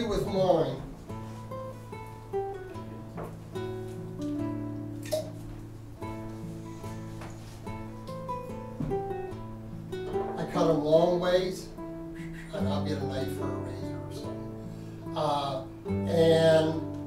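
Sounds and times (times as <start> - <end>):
plucked acoustic guitar notes: 0.0 - 17.0.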